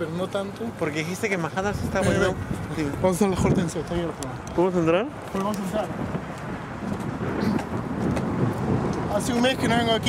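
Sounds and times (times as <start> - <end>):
low street rumble: 0.0 - 10.0.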